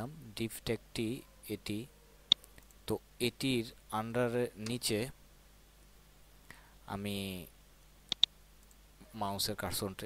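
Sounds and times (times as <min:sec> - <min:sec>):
low steady hum: 0:00.0 - 0:10.0
mouse button clicks: 0:08.1 - 0:08.8.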